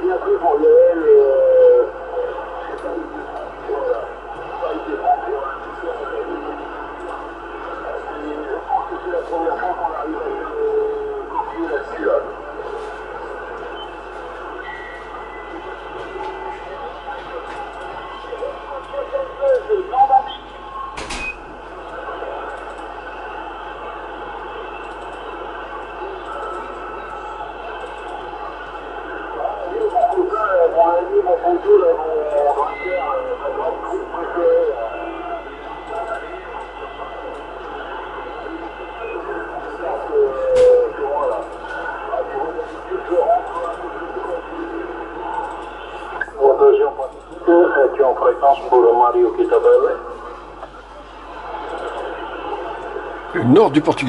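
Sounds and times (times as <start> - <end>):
distorted radio voices: 0.0 - 20.6, 37.6 - 54.0.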